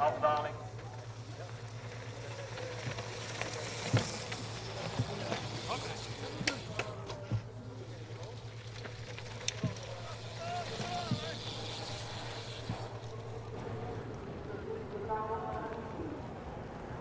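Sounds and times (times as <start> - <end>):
indistinct spectators' voices: 0.0 - 17.0
steady low hum: 0.0 - 17.0.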